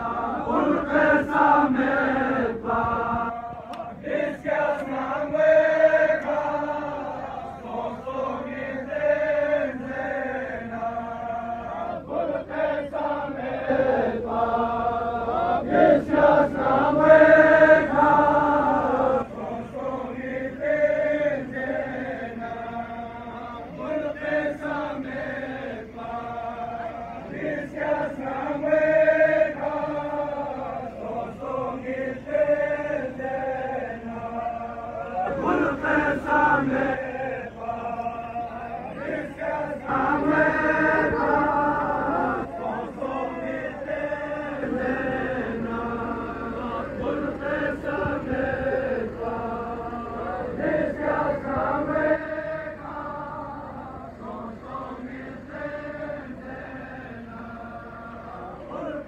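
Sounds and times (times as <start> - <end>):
men chanting a lament over loudspeaker: 0.0 - 59.0.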